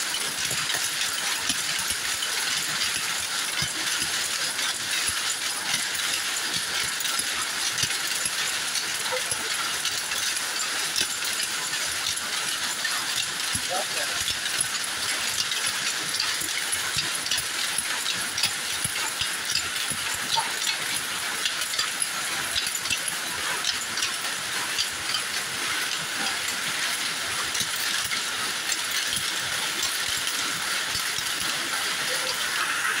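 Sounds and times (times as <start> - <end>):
power looms clattering: 0.0 - 33.0.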